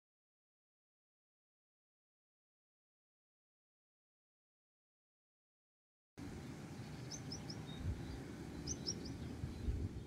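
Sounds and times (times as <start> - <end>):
small bird chirping: 6.7 - 10.0.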